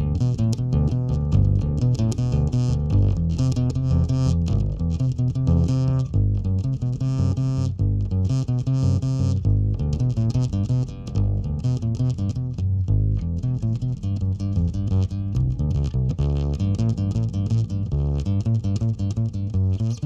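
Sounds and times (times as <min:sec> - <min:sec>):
upright bass plucked notes: 0:00.0 - 0:20.0.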